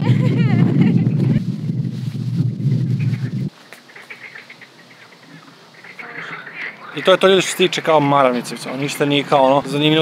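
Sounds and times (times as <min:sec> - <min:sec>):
wind rumble on microphone: 0:00.0 - 0:03.5.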